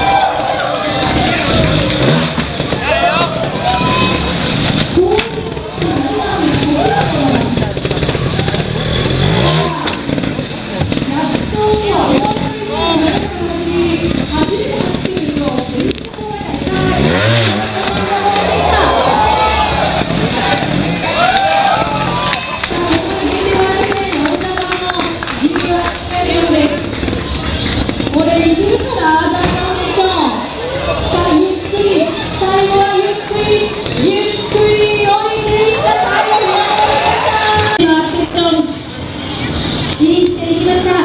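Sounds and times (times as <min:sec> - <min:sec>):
motorcycle engine running: 0:00.0 - 0:41.0.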